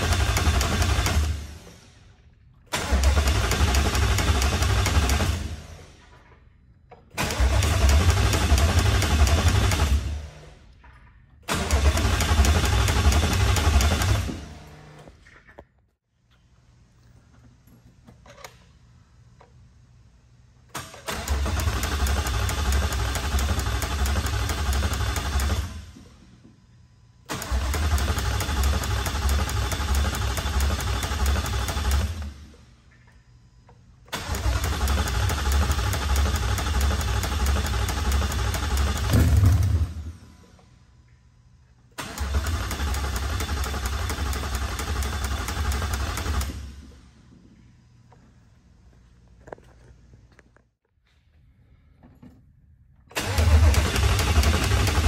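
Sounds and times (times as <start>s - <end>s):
engine starter cranking: 2.7s - 5.6s, 7.0s - 10.5s, 11.4s - 15.0s, 20.7s - 26.0s, 27.3s - 32.6s, 34.1s - 40.4s, 42.0s - 47.0s, 53.1s - 55.0s.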